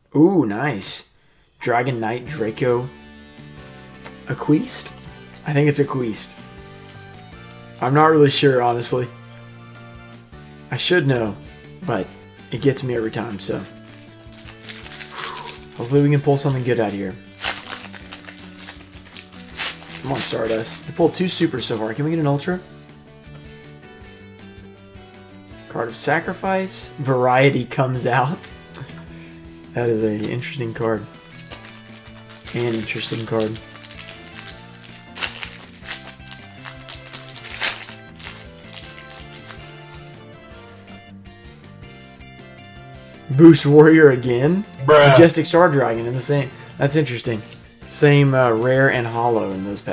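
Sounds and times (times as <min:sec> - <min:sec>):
background music: 0:00.0 - 0:49.9
foil wrapper tearing: 0:13.5 - 0:22.0, 0:31.2 - 0:40.1.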